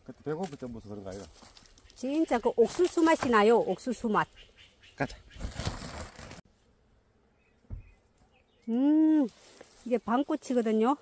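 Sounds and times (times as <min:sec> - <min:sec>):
rustling in dry leaf litter: 0:00.1 - 0:03.7, 0:05.3 - 0:06.4, 0:09.0 - 0:11.0.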